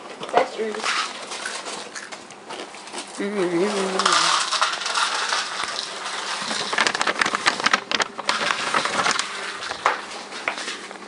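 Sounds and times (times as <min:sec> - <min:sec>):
crackling and crunching: 0:00.0 - 0:11.0.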